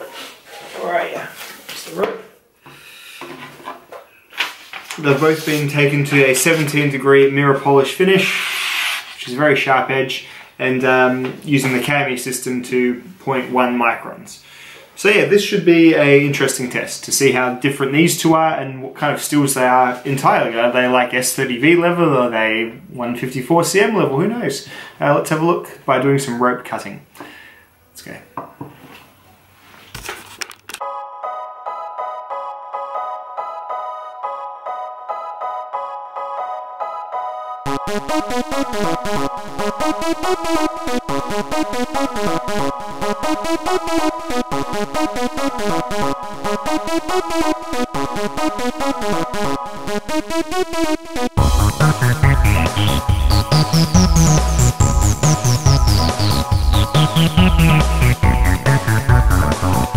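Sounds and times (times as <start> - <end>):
paper rustle: 4.3 - 5.8, 29.7 - 30.6
piano background music: 30.8 - 59.9.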